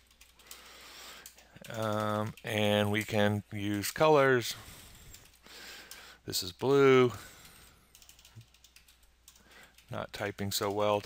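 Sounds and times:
faint computer keyboard keystrokes: 0.0s - 4.0s, 7.2s - 11.0s.

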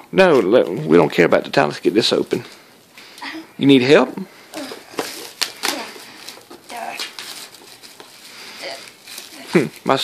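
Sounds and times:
plastic wrap crinkling and tearing: 4.6s - 10.0s.

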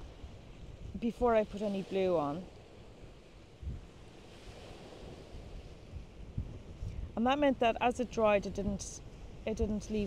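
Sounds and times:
hiss of sea and wind: 0.0s - 10.0s
wind rumbling on microphone: 0.0s - 10.0s.

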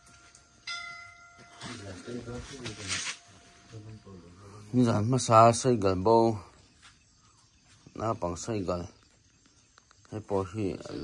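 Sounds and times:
bell ding: 0.2s - 2.0s.

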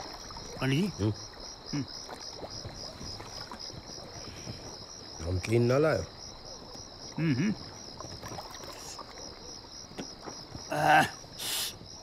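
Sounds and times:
crickets chirping: 0.0s - 12.0s
man making wordless sounds: 7.2s - 7.6s.

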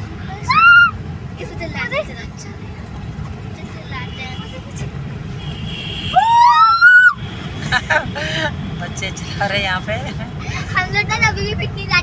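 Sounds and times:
car cabin road rumble: 0.0s - 12.0s
shrill rising wail: 6.2s - 7.2s.

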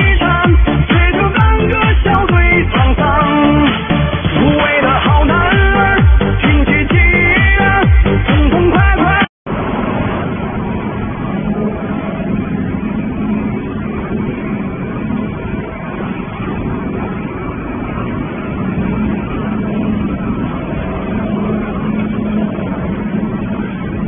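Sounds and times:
low hum: 0.0s - 24.0s.

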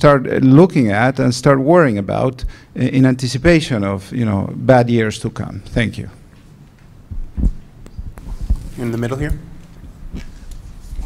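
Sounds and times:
microphone handling bumps: 7.0s - 10.4s.

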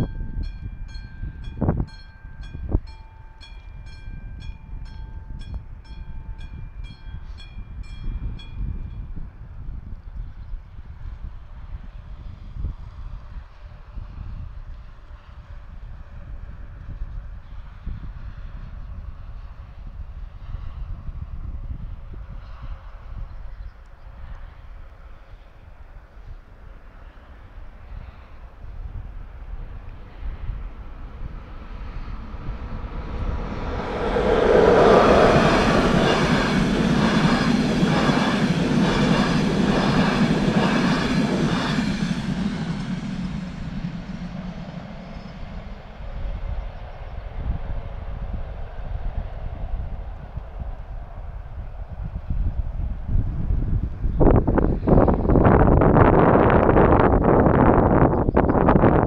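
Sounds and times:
wind buffeting microphone: 0.0s - 3.0s, 3.6s - 59.0s
train wheels clicking on rails: 31.4s - 45.9s.

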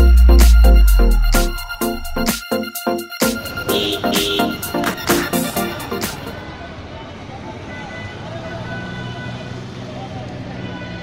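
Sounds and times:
motor vehicles running: 4.8s - 11.0s.

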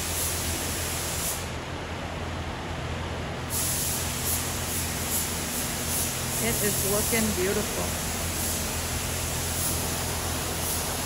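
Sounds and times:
paint spray gun hissing: 0.0s - 1.6s, 3.5s - 11.0s
steady low hum: 0.0s - 11.0s.

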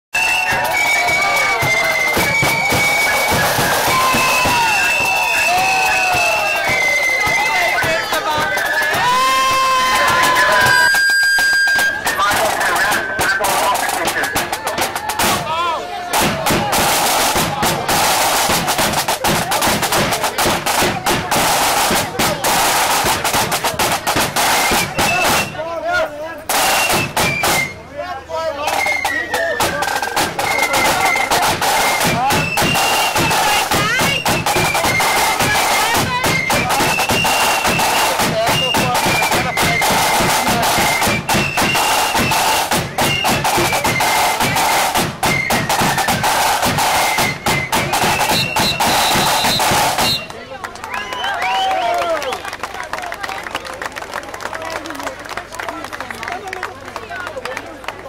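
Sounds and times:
high melody line: 0.2s - 14.8s
rapid snare drumming: 0.2s - 25.6s, 26.4s - 27.9s, 28.6s - 50.3s.

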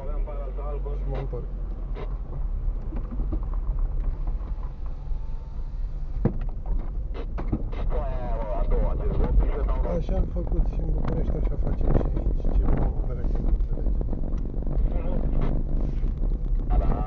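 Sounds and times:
car engine and tyres rumbling: 0.0s - 17.0s.

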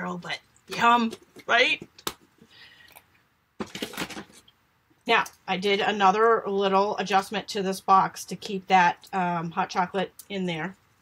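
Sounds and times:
plastic box clicks and rustles: 3.6s - 4.4s.

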